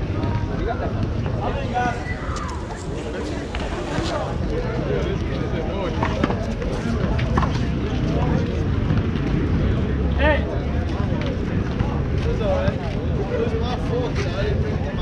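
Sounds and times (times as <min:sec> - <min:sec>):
people chattering: 0:00.0 - 0:15.0
steady low rumble: 0:00.8 - 0:05.7.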